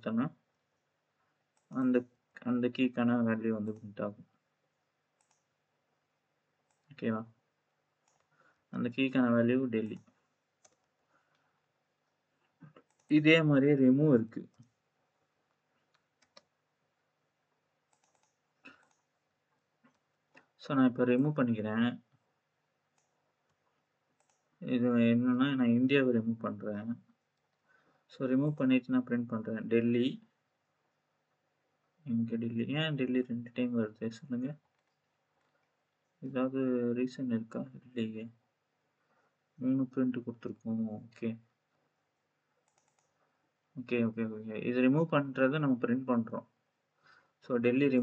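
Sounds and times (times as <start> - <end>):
man talking: 0.0 - 0.4, 1.7 - 4.2, 7.0 - 7.3, 8.8 - 10.0, 13.1 - 14.5, 20.6 - 22.0, 24.6 - 27.0, 28.1 - 30.2, 32.1 - 34.6, 36.2 - 38.3, 39.6 - 41.4, 43.8 - 46.4, 47.4 - 48.0
computer mouse clicks: 1.5 - 1.8, 5.2 - 5.6, 6.6 - 7.1, 8.0 - 8.4, 9.8 - 11.5, 12.1 - 13.2, 15.5 - 16.6, 17.9 - 19.2, 19.8 - 20.6, 22.9 - 24.6, 34.6 - 36.1, 42.6 - 43.3
mouse and keyboard clicks: 5.2 - 5.5, 8.0 - 8.3, 9.9 - 11.0, 12.6 - 13.2, 15.8 - 16.6, 17.9 - 19.1, 24.2 - 24.5, 42.6 - 43.2.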